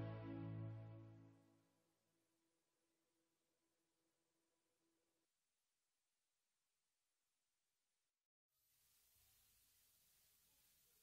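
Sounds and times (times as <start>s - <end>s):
faint hiss: 8.6s - 11.0s.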